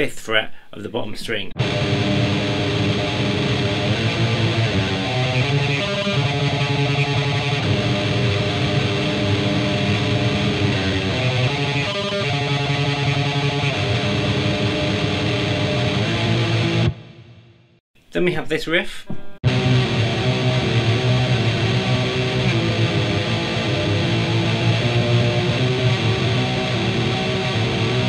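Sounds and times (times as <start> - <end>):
distorted electric guitar tremolo picking: 1.6 - 17.5, 19.4 - 28.0.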